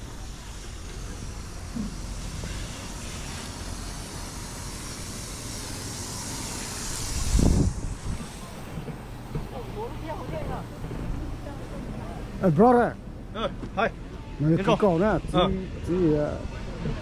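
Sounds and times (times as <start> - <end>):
wind gust on microphone: 6.9 - 8.6.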